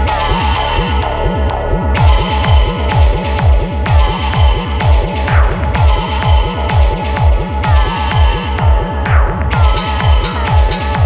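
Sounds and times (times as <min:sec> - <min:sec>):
deep kick drum beat: 0:01.7 - 0:11.0.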